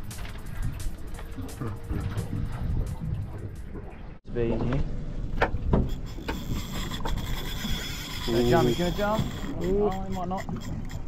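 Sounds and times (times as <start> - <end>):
fishing reel whirring: 5.8 - 11.0.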